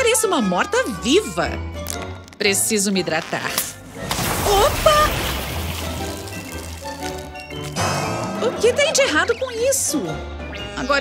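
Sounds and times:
water splattering from squeezed bottle: 3.5 - 7.8.

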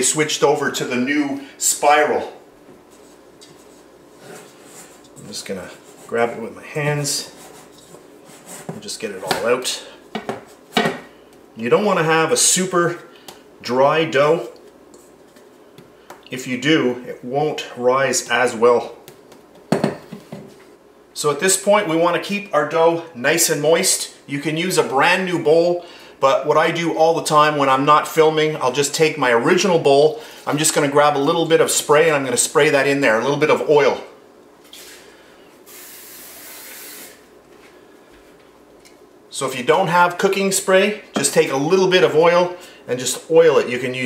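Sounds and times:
aerosol spray hissing: 35.7 - 37.2.

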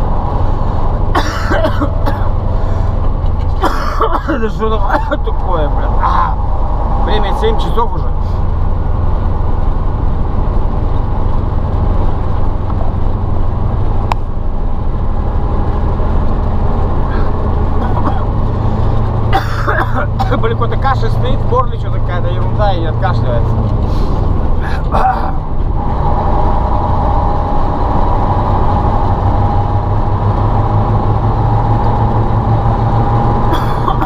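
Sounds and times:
diesel truck engine running: 0.0 - 34.0.

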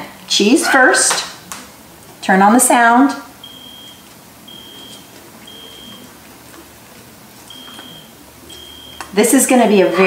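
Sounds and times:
alarm beeps from phone speaker: 3.4 - 6.1, 7.5 - 9.2, 9.8 - 10.0.

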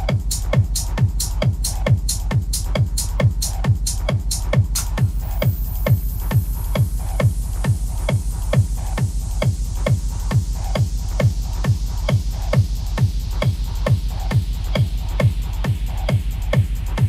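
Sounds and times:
hi-hats: 0.0 - 17.0
kick drum: 0.0 - 17.0.

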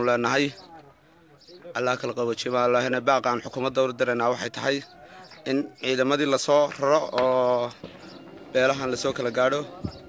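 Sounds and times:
man speaking: 0.0 - 7.8, 8.5 - 10.0.

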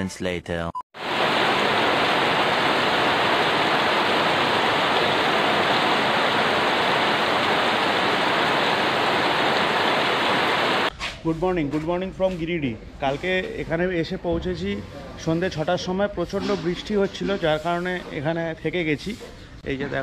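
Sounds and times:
heavy rain pouring: 1.0 - 10.9.

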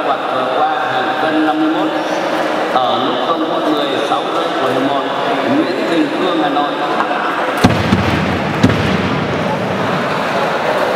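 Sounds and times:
booming thumps echoing in hall: 7.5 - 10.9.

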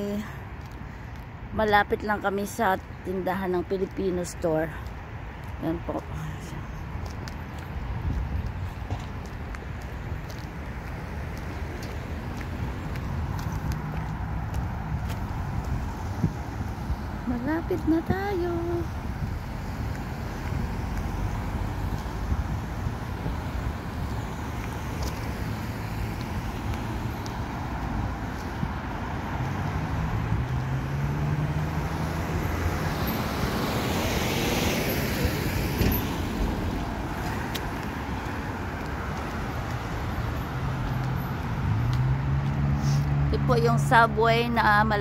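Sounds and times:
cars passing on wet street: 0.0 - 45.0
vehicle engine hum: 4.9 - 45.0.

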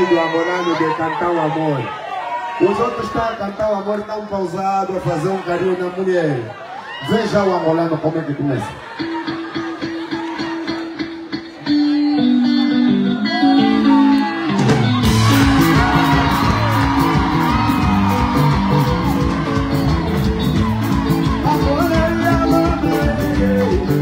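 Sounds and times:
live band music: 8.8 - 24.0
person singing: 11.6 - 24.0.

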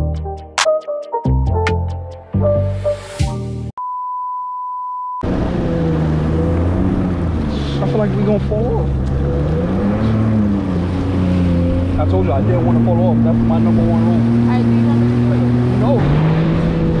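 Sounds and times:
jet ski engine: 5.2 - 17.0
wind: 5.2 - 17.0.

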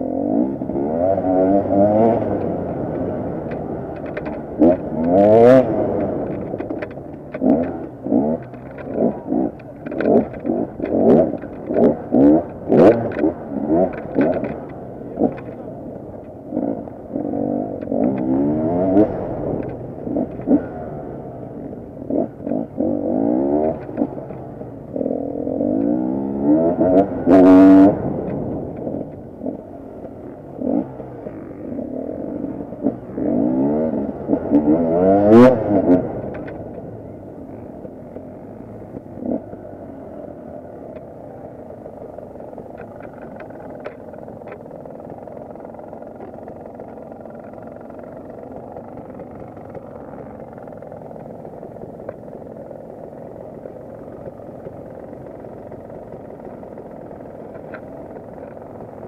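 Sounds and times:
motorcycle engine revving: 0.0 - 59.0.

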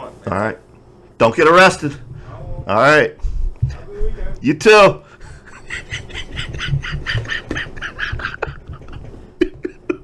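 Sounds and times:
man laughing wheezily: 5.1 - 10.0.

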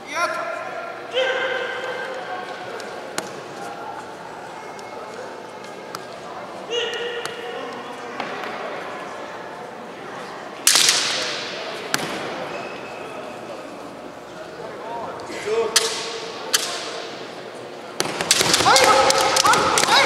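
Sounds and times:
fencer shouting: 1.1 - 1.9, 6.7 - 7.4, 18.4 - 20.0.

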